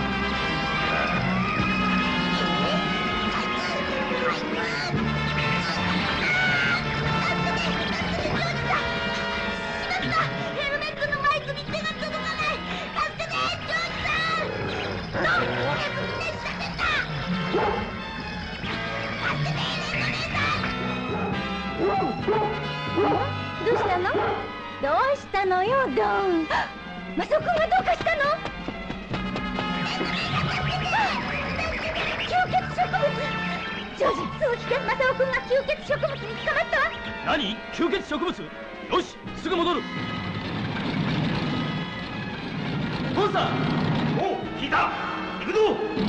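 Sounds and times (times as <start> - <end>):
background music: 0.0 - 46.0
buggy engine low rumble: 0.0 - 46.0
dog barking and whining: 14.4 - 15.9, 17.5 - 17.9, 21.1 - 24.5.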